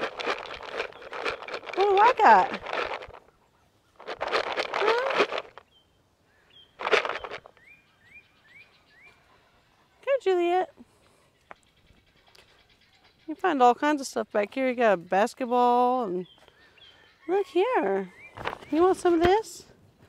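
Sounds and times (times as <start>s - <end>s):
bird chirping: 0.4s - 1.7s, 5.6s - 19.2s.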